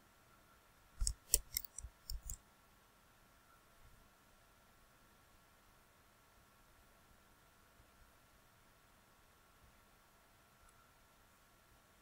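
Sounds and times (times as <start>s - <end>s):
rapid computer mouse clicks: 1.0s - 2.4s.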